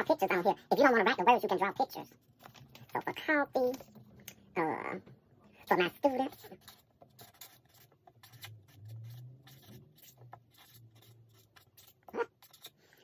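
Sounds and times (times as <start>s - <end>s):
marker pen scratching on paper: 5.6s - 13.0s.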